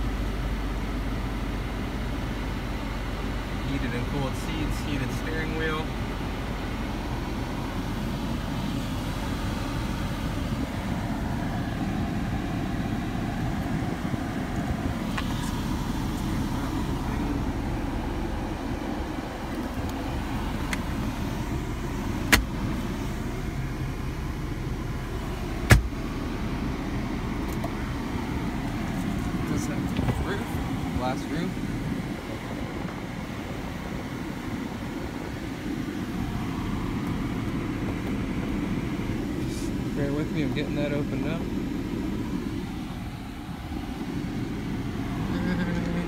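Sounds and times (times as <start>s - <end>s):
low rumble inside car: 0.0s - 46.0s.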